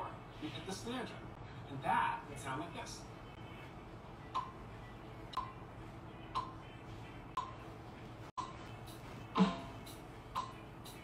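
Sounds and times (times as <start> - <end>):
metronome clicking: 4.3 - 4.6, 10.3 - 11.0.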